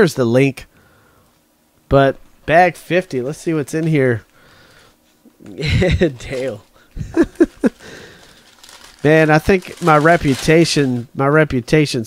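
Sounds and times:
man chuckling: 0:05.4 - 0:08.2
paper wrapping rustling: 0:06.2 - 0:11.2.

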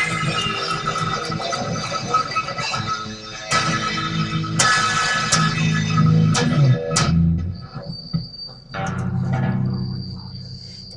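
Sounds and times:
electric guitar strings ringing: 0:00.0 - 0:07.8, 0:08.7 - 0:10.6
high-pitched whine: 0:00.0 - 0:10.9.

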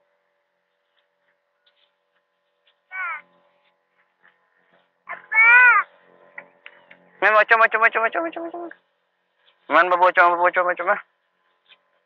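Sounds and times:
cat meowing: 0:02.9 - 0:03.2.

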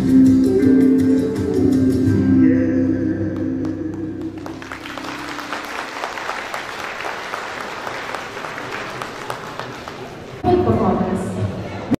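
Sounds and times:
audience applauding: 0:04.2 - 0:10.4.

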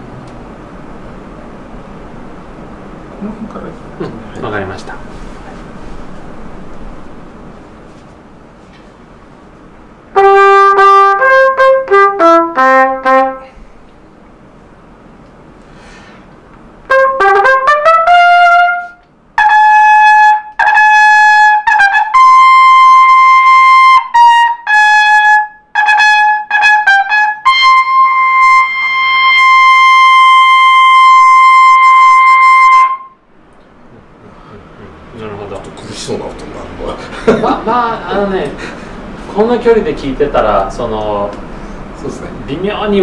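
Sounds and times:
trumpet note: 0:10.1 - 0:13.6, 0:16.8 - 0:33.3
soft breath: 0:15.6 - 0:16.3, 0:34.2 - 0:34.8.

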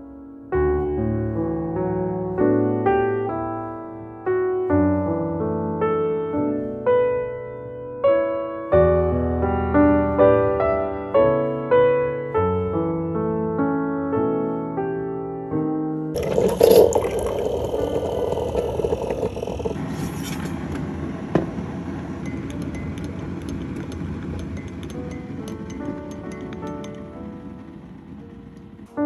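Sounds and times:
soft piano music: 0:00.0 - 0:16.2, 0:21.5 - 0:29.0
water pouring into a mug: 0:16.2 - 0:19.8.

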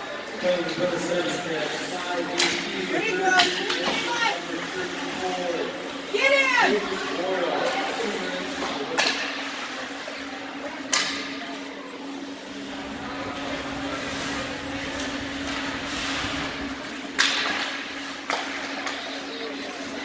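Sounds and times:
steady low hum: 0:09.2 - 0:20.0
skates scraping ice: 0:12.6 - 0:20.0
hockey puck hitting boards: 0:17.1 - 0:19.0.

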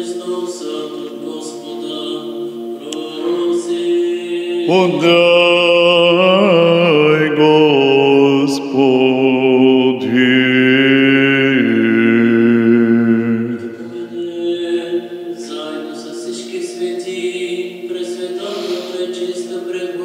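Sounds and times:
man chanting solo: 0:00.0 - 0:20.0.

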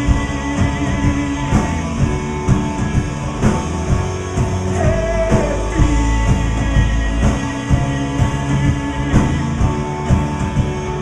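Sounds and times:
drum kit strikes: 0:00.0 - 0:11.0
electric guitar: 0:00.0 - 0:11.0.

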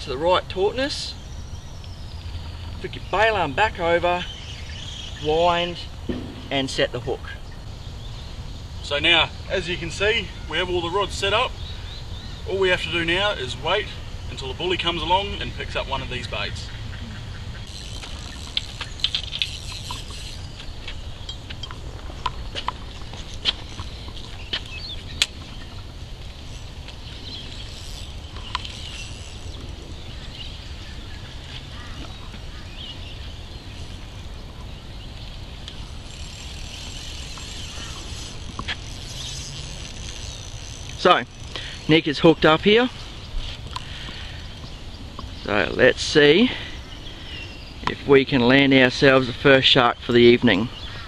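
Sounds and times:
birds chirping: 0:00.0 - 0:51.0
steady low rumble: 0:05.9 - 0:08.9.

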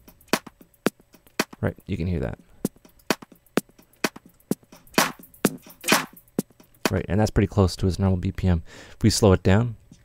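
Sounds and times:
chopped electronic drum loop: 0:00.0 - 0:07.1.

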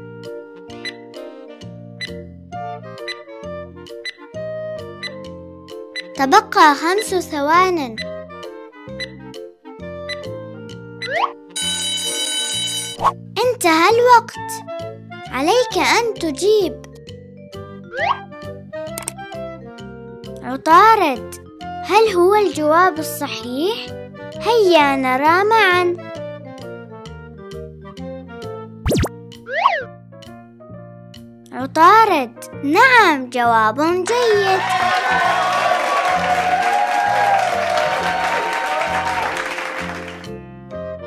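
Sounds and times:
light children's music: 0:00.0 - 0:41.0
alarm clock bell ringing: 0:11.6 - 0:13.0
cartoon springy boing: 0:28.9 - 0:29.9.

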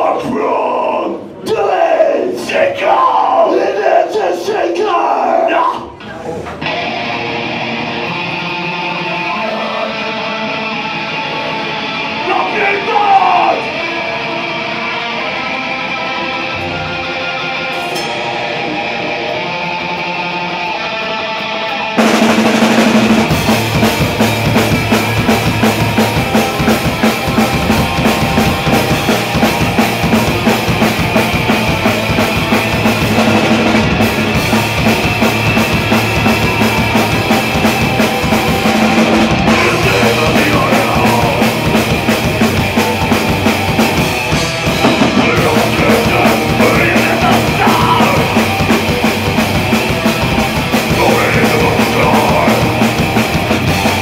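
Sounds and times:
ringing electric guitar chords: 0:06.6 - 0:12.6, 0:13.4 - 0:54.0
fast dense drums: 0:22.0 - 0:54.0.

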